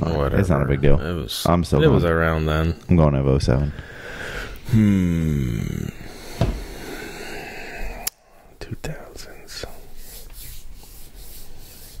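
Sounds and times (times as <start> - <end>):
hands rubbing together: 9.2 - 12.0.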